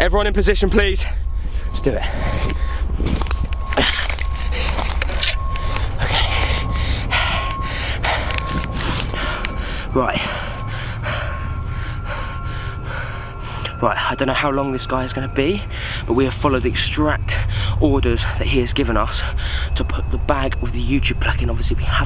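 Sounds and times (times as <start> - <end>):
low handling rumble: 0.0 - 22.0
person breathing hard: 1.0 - 3.0, 3.7 - 13.8, 15.6 - 16.1, 17.4 - 17.8, 19.2 - 19.8
leaves and branches crackling: 1.8 - 10.4.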